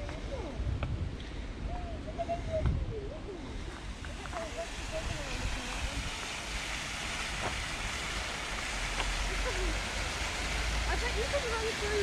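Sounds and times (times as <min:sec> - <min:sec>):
wind rumble on microphone: 0:00.0 - 0:12.0
fountain water splashing: 0:02.1 - 0:12.0.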